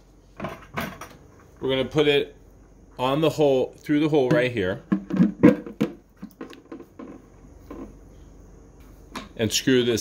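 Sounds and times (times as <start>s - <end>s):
hollow plastic knocks and rubbing: 4.2s - 8.0s.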